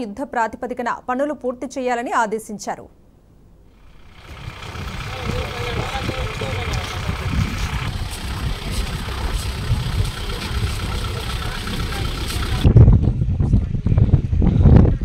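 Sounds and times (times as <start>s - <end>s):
people talking: 0.0s - 2.9s, 4.8s - 15.0s
tractor diesel engine running: 3.8s - 13.3s.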